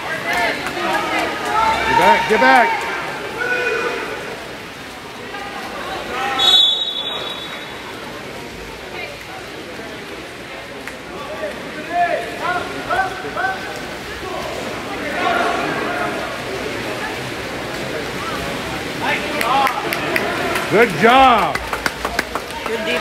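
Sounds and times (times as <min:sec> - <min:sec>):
swimmers splashing: 0:00.0 - 0:23.0
people shouting in echoing hall: 0:00.8 - 0:04.4.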